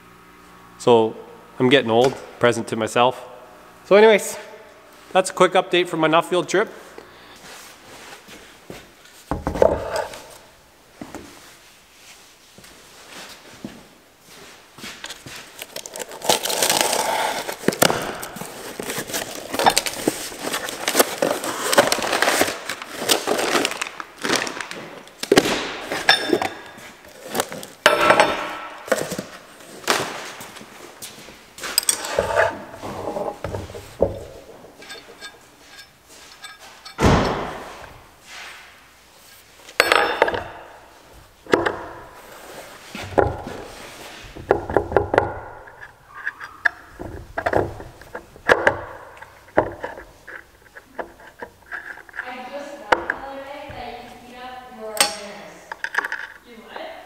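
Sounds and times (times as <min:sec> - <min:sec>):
packing paper rustling: 0:15.3 - 0:25.5
metal parts clunking: 0:17.4 - 0:24.5, 0:31.7 - 0:37.8, 0:55.0 - 0:56.4
metal parts knocking: 0:34.0 - 0:37.5
metallic clink: 0:34.8 - 0:37.0.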